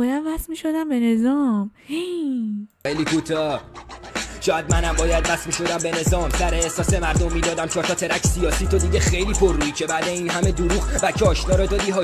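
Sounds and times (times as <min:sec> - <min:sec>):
man rapping: 0:02.8 - 0:12.0
hip-hop beat with deep bass: 0:02.9 - 0:12.0.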